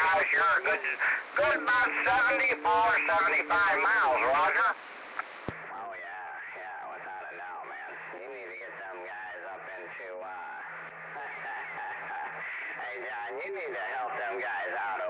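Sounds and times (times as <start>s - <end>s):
voice over cb radio: 0.0s - 15.0s
radio click: 0.2s - 5.7s.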